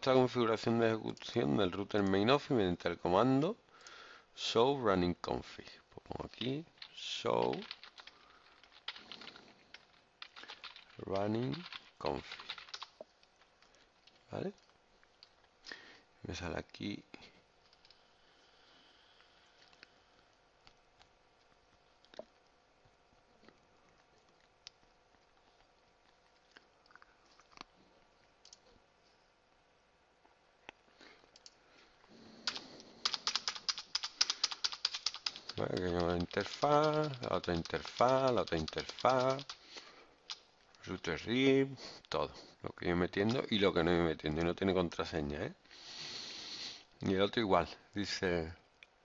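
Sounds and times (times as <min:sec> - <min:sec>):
faint keyboard typing: 0:06.1 - 0:15.8, 0:17.6 - 0:18.1, 0:23.4 - 0:28.8, 0:31.3 - 0:41.4, 0:43.1 - 0:45.1.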